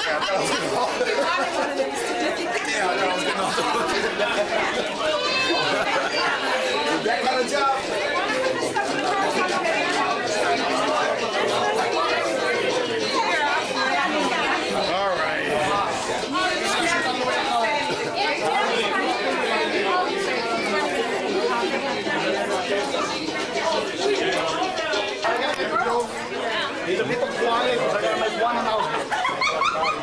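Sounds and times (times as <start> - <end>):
crowd chatter: 0.0 - 30.0.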